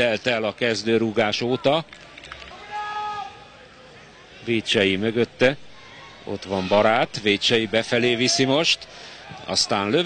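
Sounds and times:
faint stadium ambience: 0:00.0 - 0:10.0.

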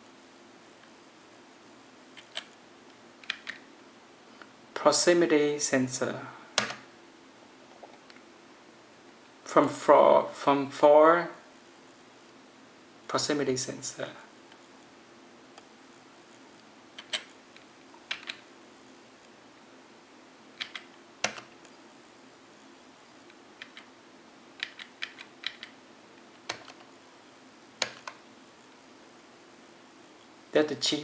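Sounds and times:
faint steady hum: 0:00.0 - 0:31.0
keyboard key clicks: 0:03.2 - 0:03.6, 0:18.1 - 0:18.4, 0:20.6 - 0:21.5, 0:23.6 - 0:23.9, 0:24.6 - 0:25.8, 0:26.5 - 0:26.8, 0:27.8 - 0:28.2.

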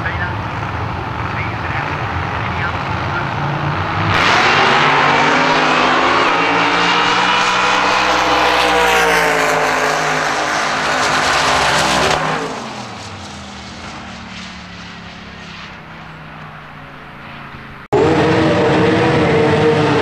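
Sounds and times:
drag racing engines at full throttle: 0:00.0 - 0:20.0.

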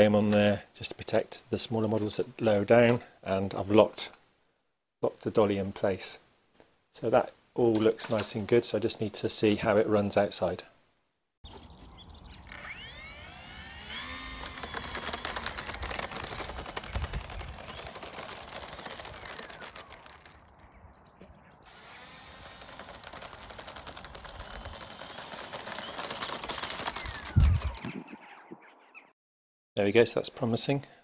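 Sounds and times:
electric motor and propeller whine: 0:12.2 - 0:20.5, 0:21.7 - 0:27.9
small wheels rattling over bricks: 0:13.9 - 0:20.6, 0:22.0 - 0:27.8.

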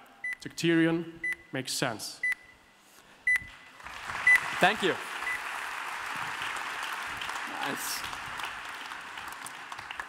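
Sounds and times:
applause: 0:03.8 - 0:10.0.

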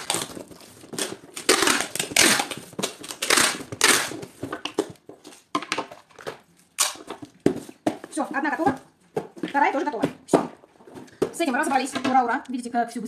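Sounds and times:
packing tape pulled off roll: 0:00.0 - 0:04.3
tape tearing: 0:00.0 - 0:04.9, 0:06.8 - 0:07.3.

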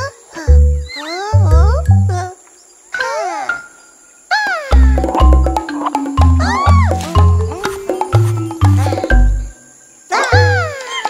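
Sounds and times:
cartoon background music: 0:00.0 - 0:02.4, 0:03.0 - 0:11.0
deep bass notes: 0:04.8 - 0:09.5.

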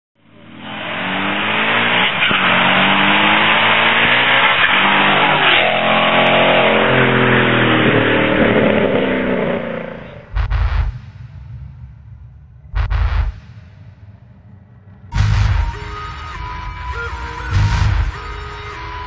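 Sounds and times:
car engine accelerating hard: 0:00.2 - 0:19.0
loud rushing noise: 0:10.2 - 0:19.0.

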